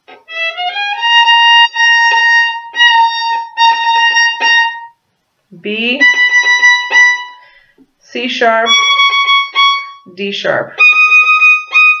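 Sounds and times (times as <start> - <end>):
solo violin: 0.0 - 5.0, 5.9 - 7.8, 8.5 - 10.1, 10.8 - 12.0.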